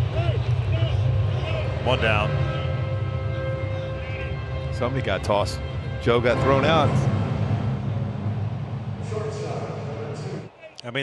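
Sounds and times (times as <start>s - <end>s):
ballpark ambience rumble: 0.0s - 11.0s.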